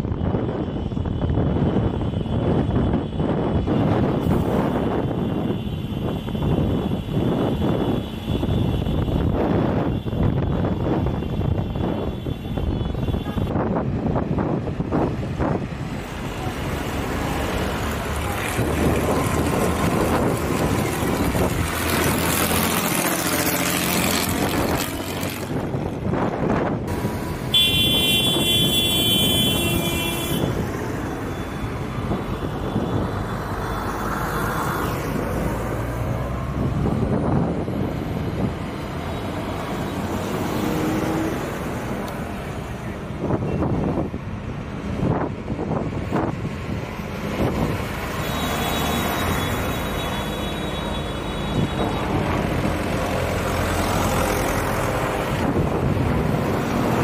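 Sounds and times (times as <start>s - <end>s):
tractors driving past: 13.4s - 57.0s
horn sounding: 27.5s - 30.6s, 48.2s - 52.1s.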